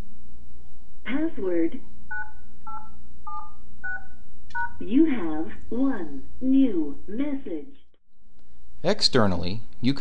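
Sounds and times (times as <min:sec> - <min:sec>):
touch-tone keypad beeps: 0:02.1 - 0:04.8
recorded voice speaking: 0:08.8 - 0:10.0.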